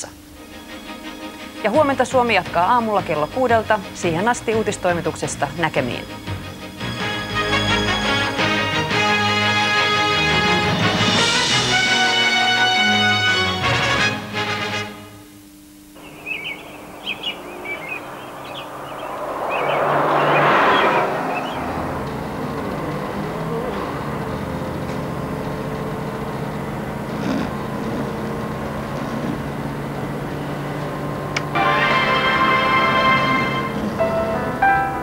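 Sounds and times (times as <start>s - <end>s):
music: 0.0s - 15.3s, 31.4s - 35.0s
bus passing: 0.8s - 13.6s, 16.0s - 35.0s
bus engine drone: 2.8s - 13.7s, 16.0s - 35.0s
birds chirping: 16.0s - 23.6s.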